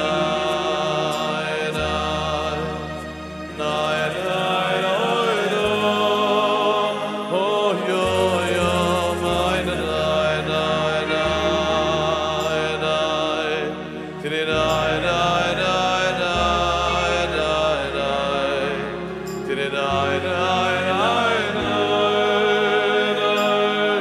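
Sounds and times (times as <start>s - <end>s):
keyboard accompaniment: 0.0s - 24.0s
male choir singing: 0.0s - 24.0s
male singer: 0.0s - 24.0s.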